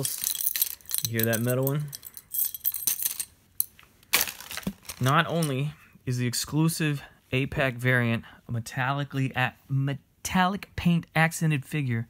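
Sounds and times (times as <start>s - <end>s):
metal tag and chain clinking: 0.0s - 3.7s.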